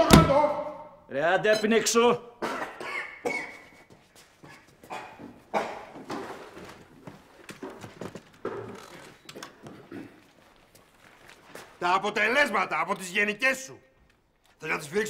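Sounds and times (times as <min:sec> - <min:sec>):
footsteps: 0:03.4 - 0:12.3
wooden chair scraping: 0:05.2 - 0:10.6.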